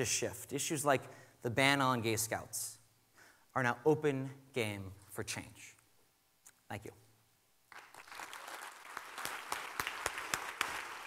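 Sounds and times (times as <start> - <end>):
audience applauding: 7.7 - 11.0.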